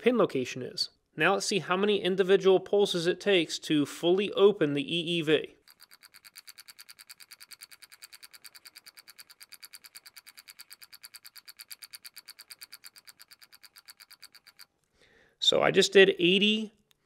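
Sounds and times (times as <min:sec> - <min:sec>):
stepper motor clicking faintly: 0:05.6 - 0:14.7.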